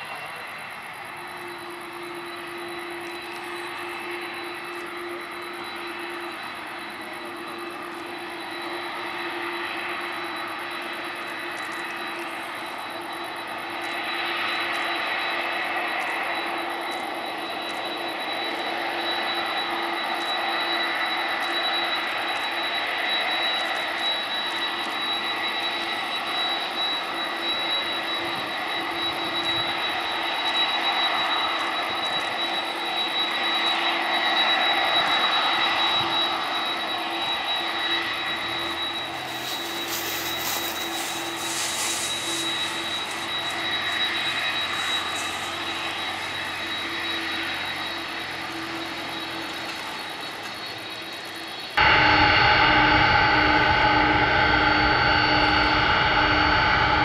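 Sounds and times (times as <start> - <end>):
jet engines whining: 0.0 - 57.0.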